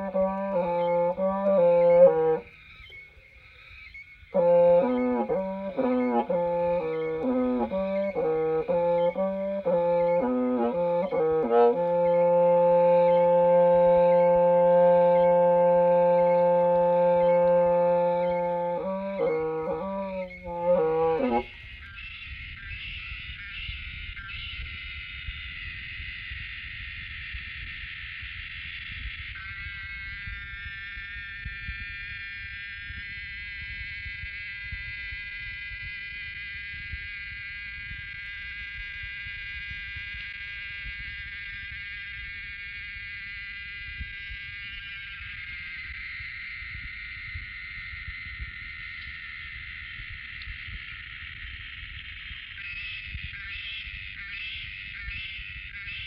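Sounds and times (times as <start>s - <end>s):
high drone of close tones: 0.0s - 2.6s, 4.2s - 21.7s
bamboo free-reed pipe: 0.0s - 3.6s, 4.3s - 21.8s.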